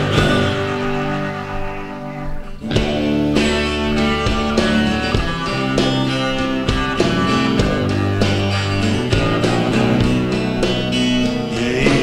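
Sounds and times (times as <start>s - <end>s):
live band instrumental: 0.0s - 12.0s
plucked guitar: 0.0s - 12.0s.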